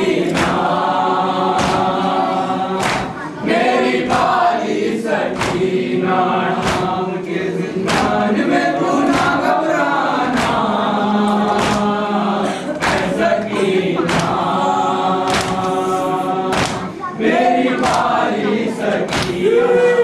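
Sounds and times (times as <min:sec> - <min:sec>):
men chanting in unison: 0:00.0 - 0:20.0.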